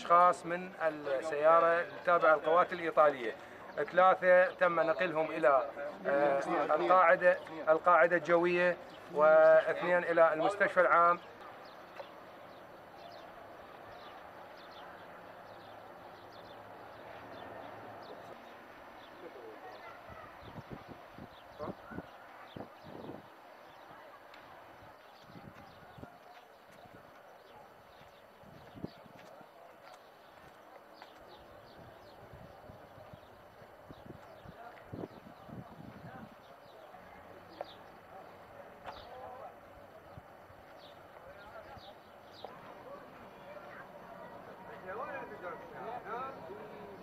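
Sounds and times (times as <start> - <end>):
distant people talking: 0.0 - 47.0
distant voices: 0.0 - 47.0.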